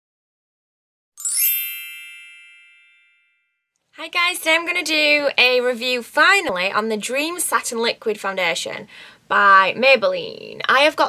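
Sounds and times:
bright chime: 1.2s - 3.7s.

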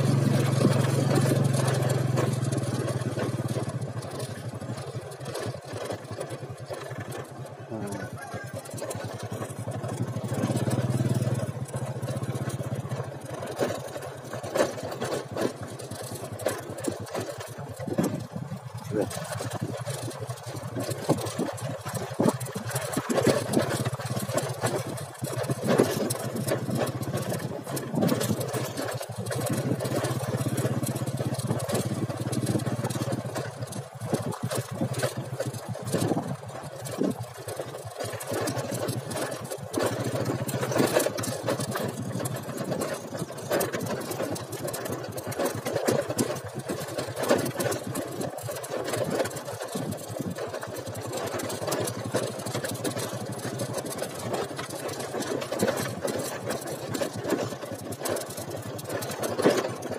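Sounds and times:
knocks and rattles: 0.0s - 59.9s
motorcycle engine running: 0.0s - 59.9s.

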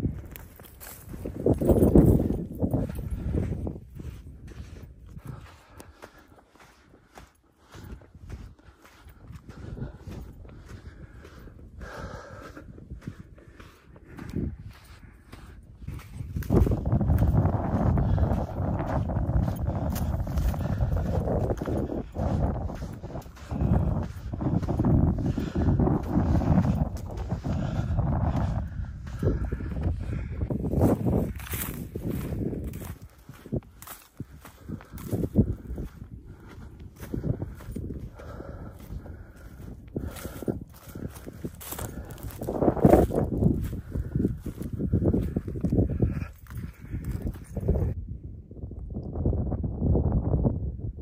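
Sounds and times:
footsteps in loose sand: 0.0s - 48.0s
wind rumbling on microphone: 0.0s - 51.0s.

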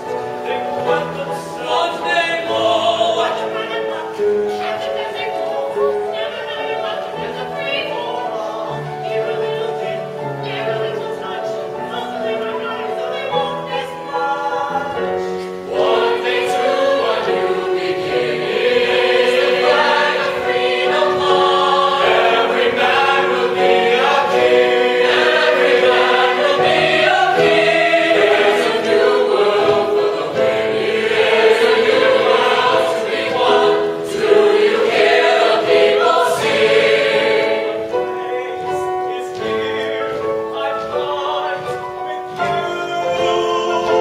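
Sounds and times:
young choir singing: 0.0s - 9.9s, 13.2s - 44.0s.

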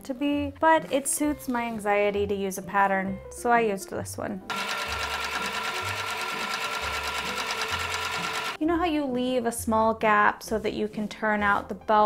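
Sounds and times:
sewing machine running: 4.5s - 8.6s.

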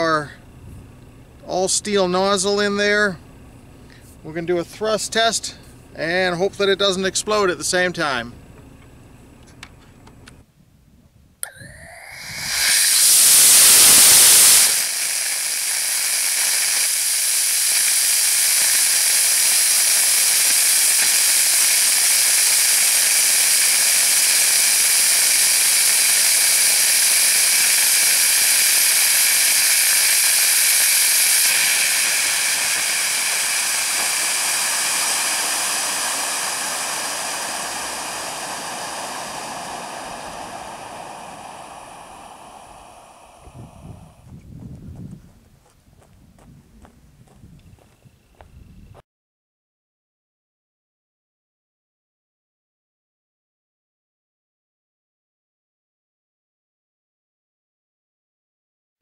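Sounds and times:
steady rocket hiss: 0.0s - 8.3s, 11.4s - 44.4s
rocket motor firing: 11.4s - 44.3s.

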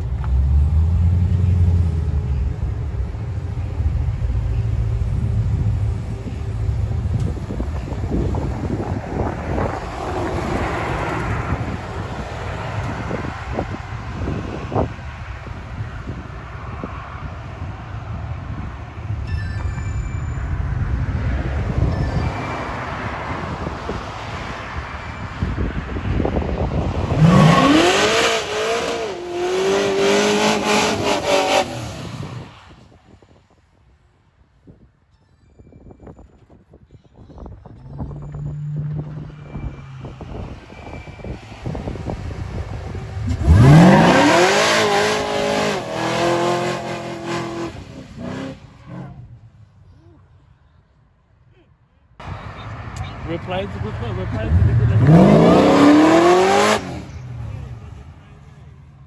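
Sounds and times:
pickup engine revving: 27.1s - 32.1s, 42.4s - 49.1s, 53.9s - 57.7s.

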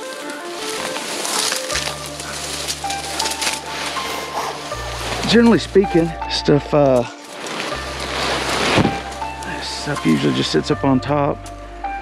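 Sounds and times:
fabric and reeds rustling: 0.0s - 11.1s.

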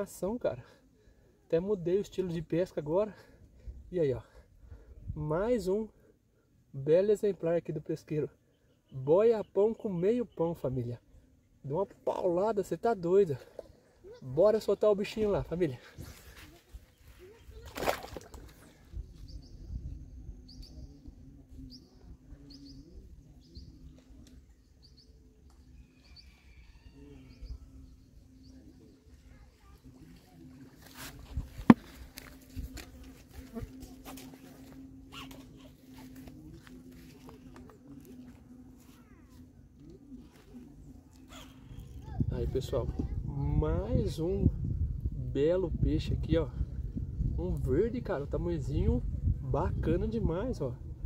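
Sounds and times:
fish splash in water: 17.6s - 18.6s
steady low hum: 27.1s - 43.2s.

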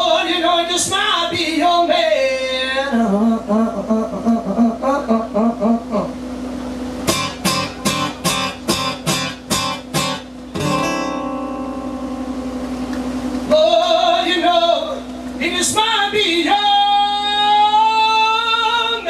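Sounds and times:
acoustic guitar playing: 7.0s - 14.0s.

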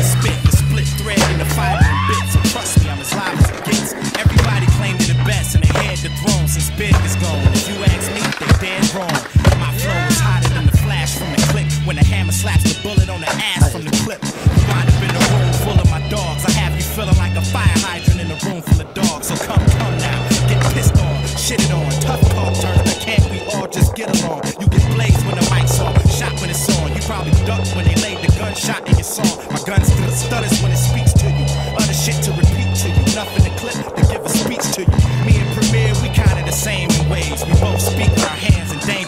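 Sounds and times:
hip hop beat with bass: 0.0s - 39.0s
skateboard clacks: 0.0s - 39.0s
skateboard wheels rolling on concrete: 0.0s - 39.0s.

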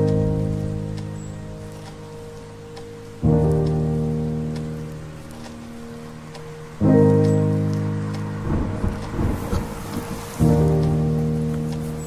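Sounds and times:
lofi hip hop chords: 0.0s - 12.0s
steady rain: 0.0s - 12.0s
rumble of thunder: 6.8s - 12.0s.

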